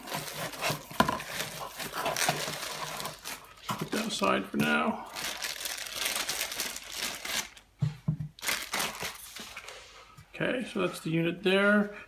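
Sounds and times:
plastic bag crinkling: 0.0s - 7.7s, 8.4s - 9.7s.

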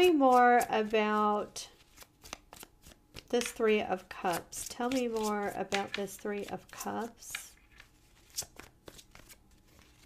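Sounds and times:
cards being shuffled: 1.7s - 10.0s.

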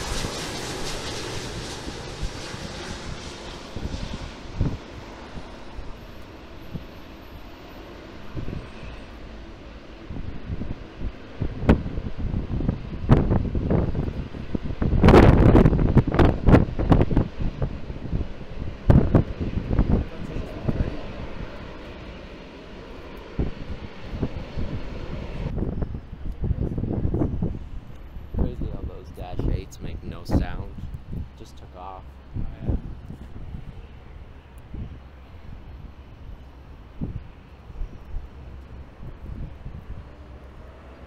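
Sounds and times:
wind on microphone: 0.0s - 7.0s, 8.2s - 9.0s, 10.0s - 22.4s, 23.0s - 31.5s, 32.2s - 41.0s
jet engines rumbling: 0.0s - 41.0s.

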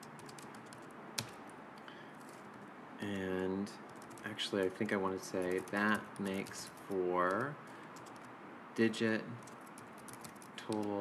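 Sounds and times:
keyboard typing: 0.0s - 2.6s, 3.8s - 8.3s, 9.4s - 11.0s.

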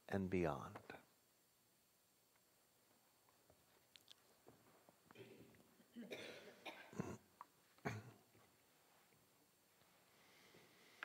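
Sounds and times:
person coughing: 5.2s - 7.2s, 7.8s - 8.2s.

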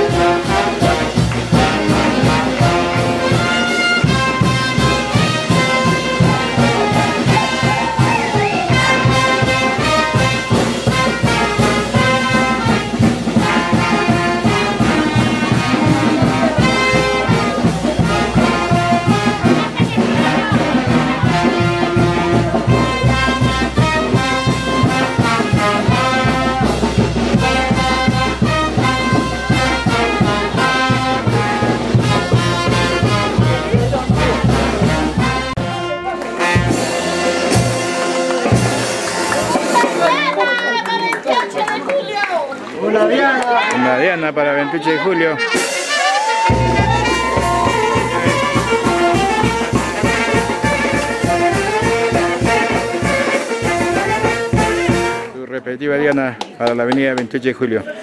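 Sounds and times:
trumpets and trombones melody: 0.0s - 40.4s, 44.8s - 55.5s
steady drumbeat: 0.0s - 40.9s, 45.4s - 55.4s.

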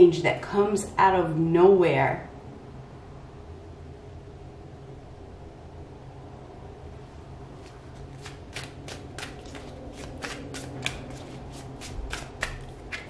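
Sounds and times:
cards being shuffled: 7.6s - 13.0s.

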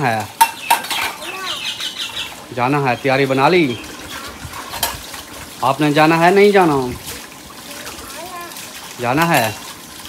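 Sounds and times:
metal dishes clattering: 0.0s - 1.3s, 4.2s - 5.1s.

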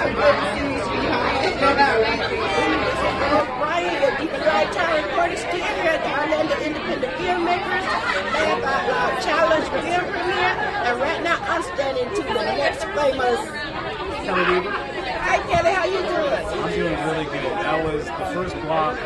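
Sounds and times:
people chattering: 0.0s - 19.0s.

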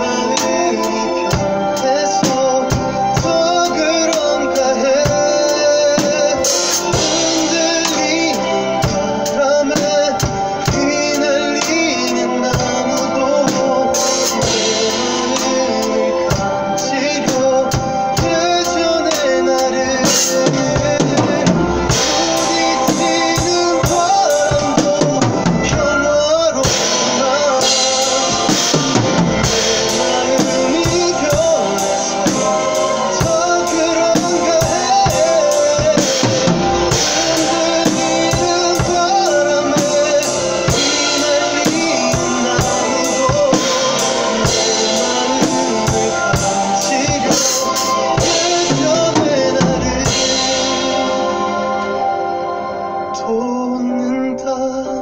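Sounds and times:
acoustic drum kit playing: 0.0s - 52.9s
recorded pop song: 0.0s - 55.0s.

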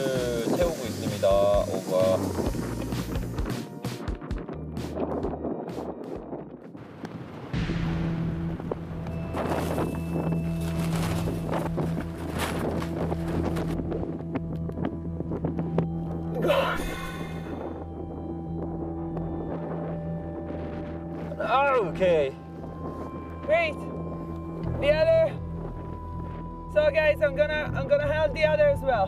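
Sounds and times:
background music with low tones: 0.0s - 6.8s, 7.6s - 29.0s
wind buffeting microphone: 0.0s - 29.0s.

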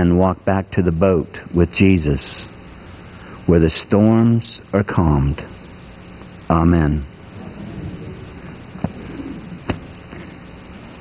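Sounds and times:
low rumbling handling noise: 7.1s - 11.0s.

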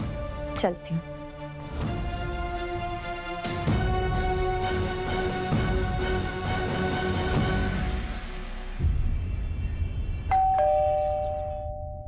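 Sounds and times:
two-tone doorbell chime: 10.3s - 12.0s.

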